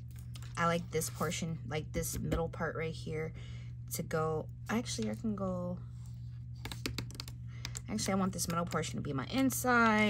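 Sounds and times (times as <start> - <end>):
steady low hum: 0.0 - 10.0
cardstock clicks and taps: 6.6 - 8.8.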